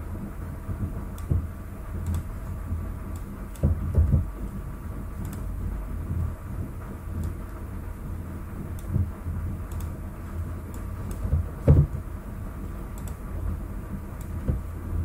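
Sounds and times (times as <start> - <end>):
low hum and rumble: 0.0 - 15.0
dull thumps: 11.3 - 12.0.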